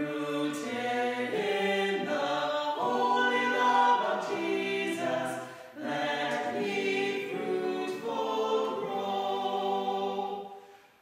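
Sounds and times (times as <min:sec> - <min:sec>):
voices singing in harmony: 0:00.0 - 0:11.0.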